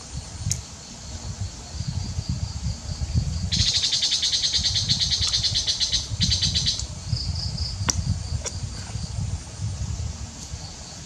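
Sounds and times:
insect high-pitched trill: 0.0s - 11.0s
insect soft pulsing call: 0.0s - 11.0s.

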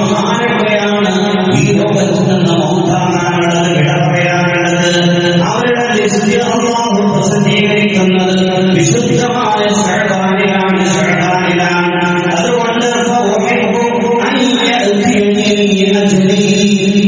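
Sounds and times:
man chanting: 0.0s - 17.0s.

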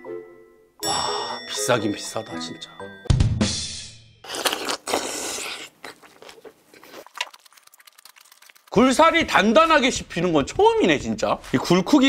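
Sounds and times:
man chewing oyster: 4.2s - 8.8s.

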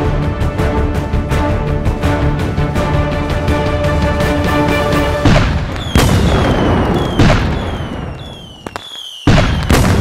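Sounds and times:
firework explosions: 5.2s - 10.0s
loud firework booms: 5.2s - 10.0s
sharp firework cracks: 5.2s - 10.0s
falling whistles: 5.8s - 9.7s.

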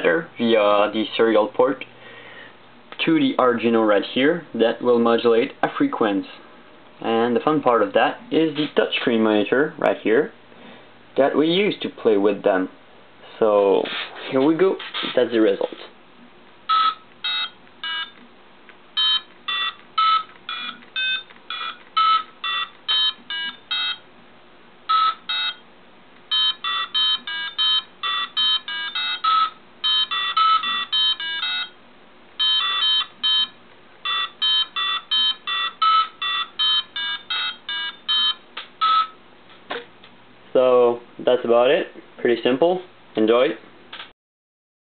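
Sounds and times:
piezo speaker beeping notes: 16.7s - 18.2s, 19.0s - 24.1s, 24.9s - 25.6s, 26.3s - 31.8s, 32.4s - 39.2s.

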